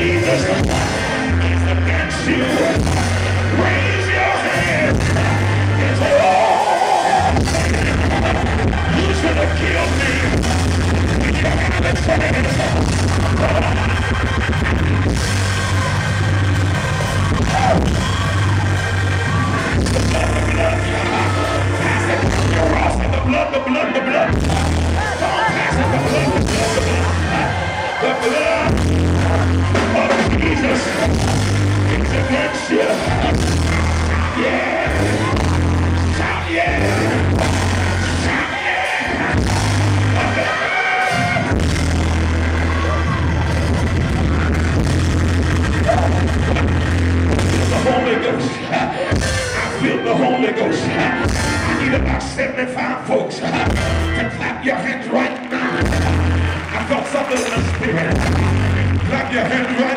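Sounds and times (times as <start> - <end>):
loud church music with heavy bass: 0.0 - 59.9
voices singing and shouting: 0.0 - 59.9.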